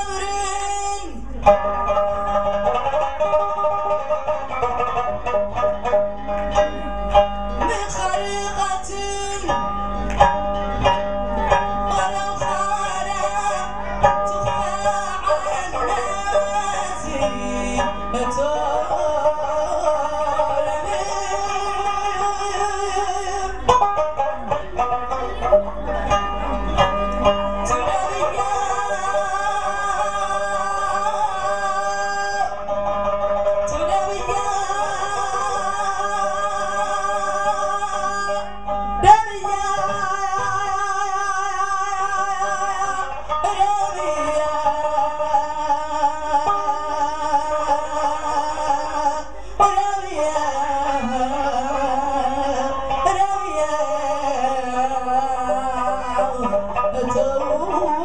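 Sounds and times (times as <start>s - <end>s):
plucked lutes and harp: 0.0s - 58.0s.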